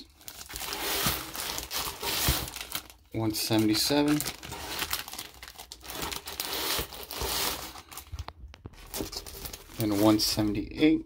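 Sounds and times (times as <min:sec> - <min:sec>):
plastic bags crinkling: 0:00.0 - 0:10.4.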